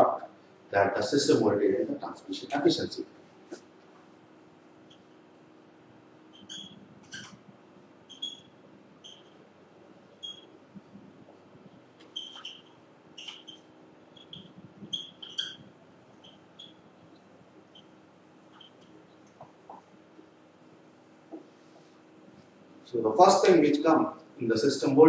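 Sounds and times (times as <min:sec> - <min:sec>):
low room hum: 0:00.0 - 0:25.0
writing tool squeaking on board: 0:06.3 - 0:07.4, 0:08.1 - 0:09.4, 0:10.2 - 0:10.5, 0:12.0 - 0:17.9, 0:18.5 - 0:19.5.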